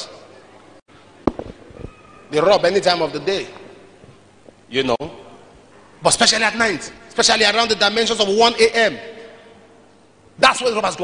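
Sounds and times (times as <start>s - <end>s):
sharp thump: 1.2s - 1.9s.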